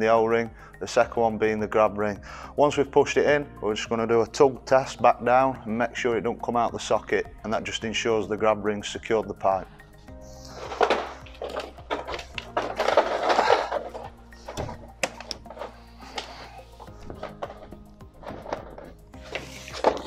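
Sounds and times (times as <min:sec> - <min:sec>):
background music with held tones: 0:00.0 - 0:20.0
plastic pipe knocks and rustles: 0:10.7 - 0:20.0.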